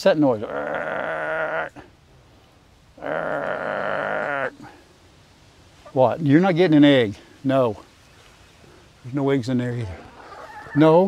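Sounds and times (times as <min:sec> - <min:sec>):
hen long drawn-out call: 0:00.4 - 0:01.9, 0:03.0 - 0:04.9, 0:09.8 - 0:11.0.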